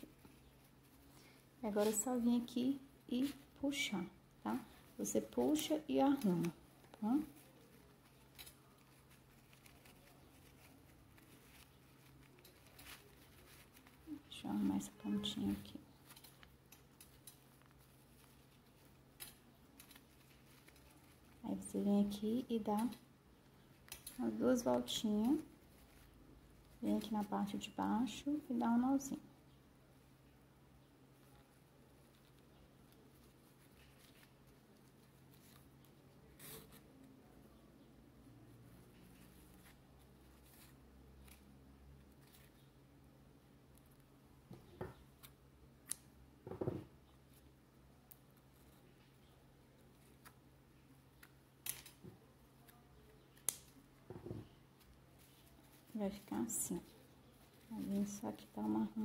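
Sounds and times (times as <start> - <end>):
ribbon and thread rustling: 0.0 - 59.0.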